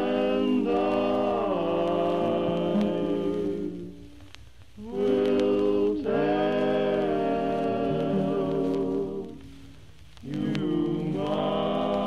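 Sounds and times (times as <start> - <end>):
male vocal quartet singing: 0.0 - 4.1, 4.8 - 9.6, 10.2 - 12.0.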